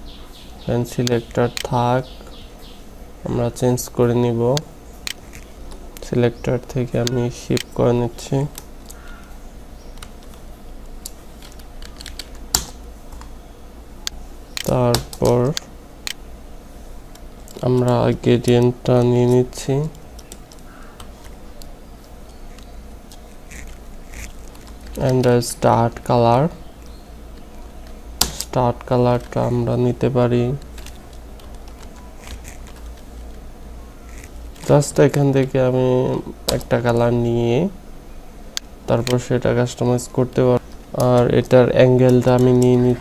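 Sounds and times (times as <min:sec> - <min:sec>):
keyboard and mouse clicking: 0:09.9 - 0:13.4, 0:17.1 - 0:25.4, 0:30.5 - 0:33.4, 0:40.3 - 0:42.8
computer keyboard keystroke clicks: 0:11.0 - 0:13.3.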